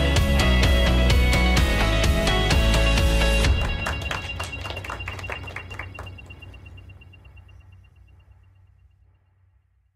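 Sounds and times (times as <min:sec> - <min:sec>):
small group applauding: 0:03.0 - 0:06.9.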